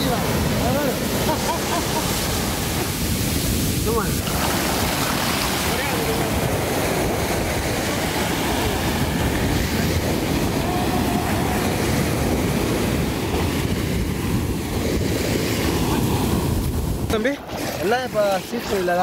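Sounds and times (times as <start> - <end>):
waves breaking on sandy beach: 0.0 - 19.0.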